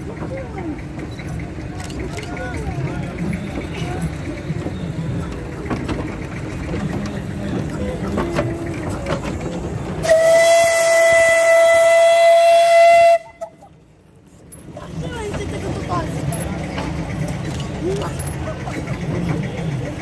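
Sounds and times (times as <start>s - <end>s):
steam whistle blast: 10.0s - 13.4s.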